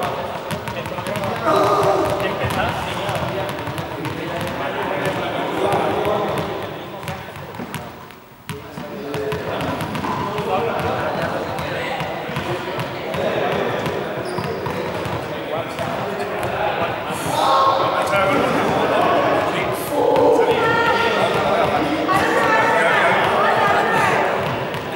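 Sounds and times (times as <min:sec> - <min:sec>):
balls bouncing on hard floor: 0:00.3 - 0:16.6
indistinct voices echoing: 0:01.1 - 0:07.4, 0:09.6 - 0:24.9.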